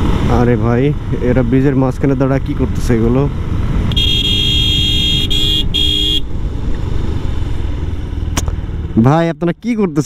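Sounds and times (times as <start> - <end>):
motorcycle horn beeping: 3.9 - 6.3.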